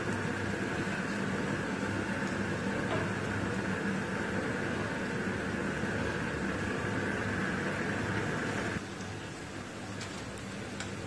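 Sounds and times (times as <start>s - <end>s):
food deep-frying in hot oil: 0.0s - 11.0s.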